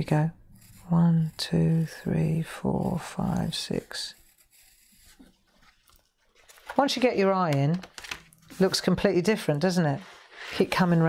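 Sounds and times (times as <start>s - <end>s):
pencil scratching on paper: 0.0s - 6.0s.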